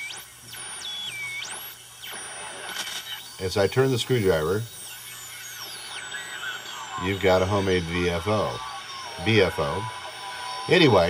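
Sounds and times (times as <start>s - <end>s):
sliding oscillator whistle: 0.0s - 11.0s.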